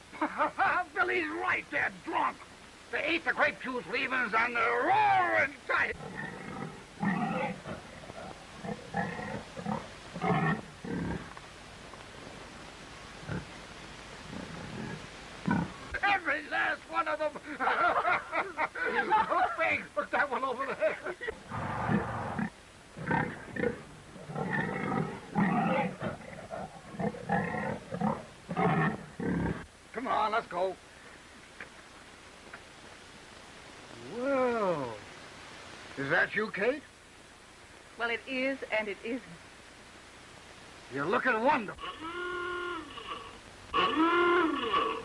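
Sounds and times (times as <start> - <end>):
pigs grunting and squealing: 5.9 - 11.4, 13.2 - 13.6, 14.2 - 16.0, 21.4 - 29.6, 41.7 - 45.0.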